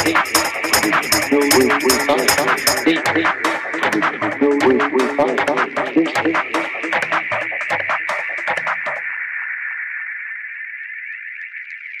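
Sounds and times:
high electronic tone: 0.0s - 9.1s
techno drums and percussion: 0.0s - 9.1s.

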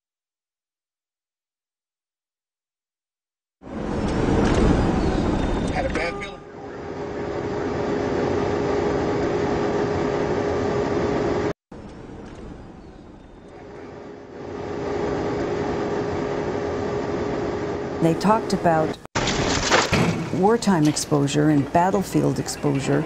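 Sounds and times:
vehicle engine and road noise: 3.6s - 19.0s.

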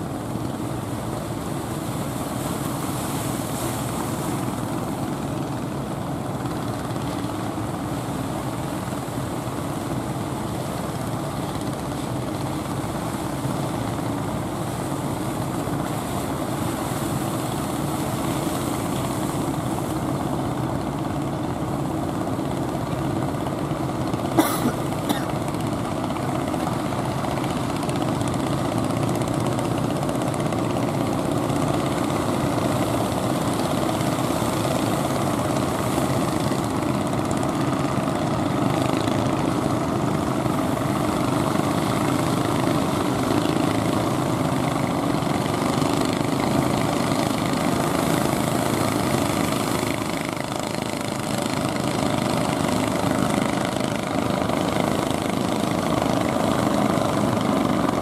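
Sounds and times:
boat engines droning: 0.0s - 58.0s.

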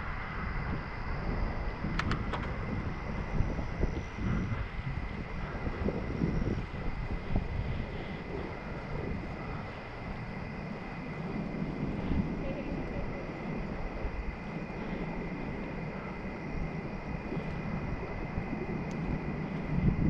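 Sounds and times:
faint high whine: 0.0s - 20.0s
wind buffeting microphone: 0.0s - 20.0s.

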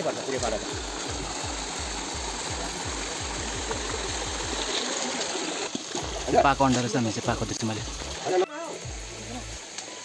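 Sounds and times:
water gushing over rocks: 0.0s - 10.0s.

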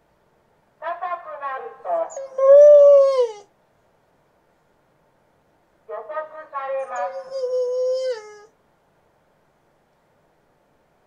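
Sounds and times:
long drawn-out howl: 2.0s - 3.4s, 7.0s - 8.5s
shorter wavering howl: 2.0s - 3.4s, 7.0s - 8.5s.

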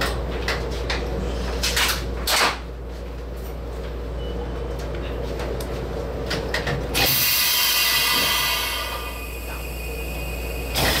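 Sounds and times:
electric train humming: 6.0s - 11.0s
loud hiss: 7.0s - 11.0s.

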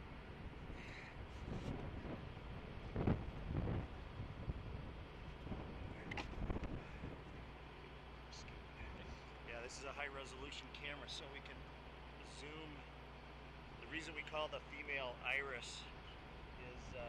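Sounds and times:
wind rumbling on microphone: 0.0s - 7.5s.

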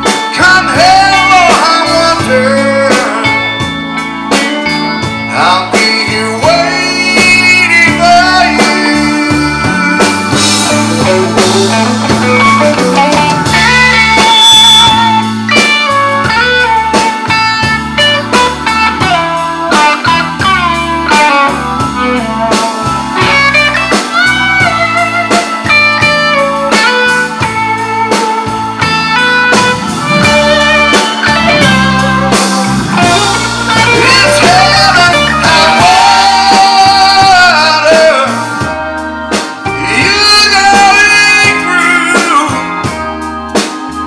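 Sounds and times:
bass: 0.0s - 44.0s
drums: 0.0s - 44.0s
lead guitar solo with bent notes: 0.0s - 44.0s.

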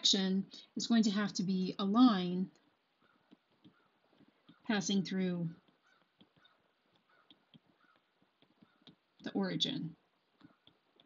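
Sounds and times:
stylus ticking on tablet screen: 2.4s - 11.0s.

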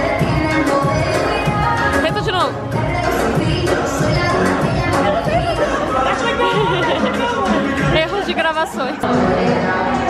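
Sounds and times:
faint music: 0.0s - 10.0s
people chattering: 0.0s - 10.0s.

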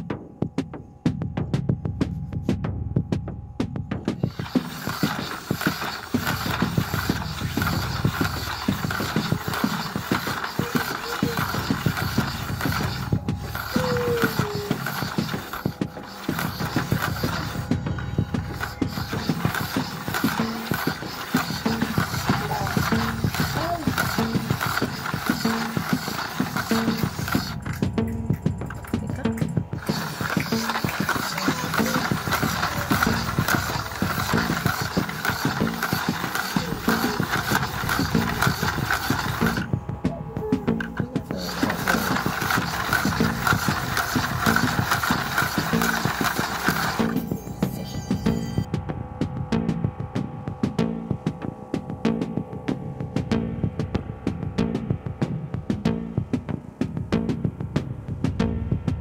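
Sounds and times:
hand-cranked plastic gears rattling: 4.1s - 39.8s, 40.6s - 48.7s.

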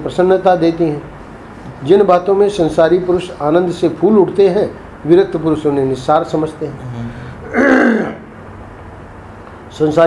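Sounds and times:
man clearing his throat: 6.9s - 8.3s.

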